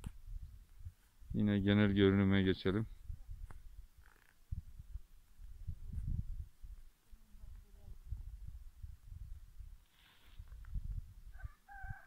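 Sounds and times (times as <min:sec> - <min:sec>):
rooster crowing: 0:11.3 - 0:12.0.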